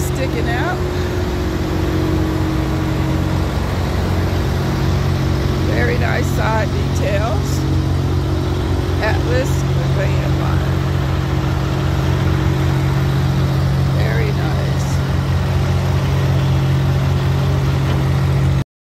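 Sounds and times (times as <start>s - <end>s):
diesel truck engine idling: 0.0s - 18.6s.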